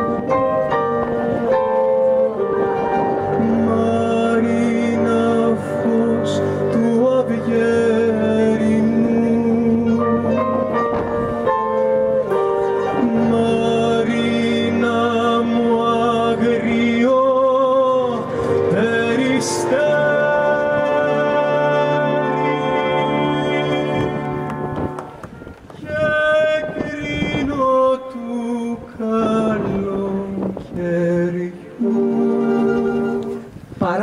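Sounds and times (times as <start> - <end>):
man singing: 0.0 - 11.0, 12.3 - 24.9, 25.8 - 34.0.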